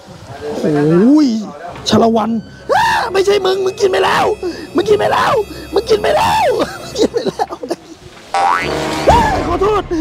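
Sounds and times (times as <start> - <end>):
comic boing sound effect: 8.3 - 9.5.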